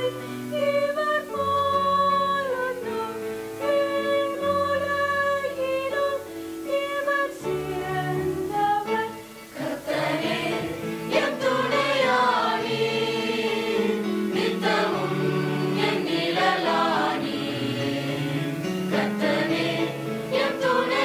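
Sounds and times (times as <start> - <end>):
mixed choir singing: 6.7 - 21.0.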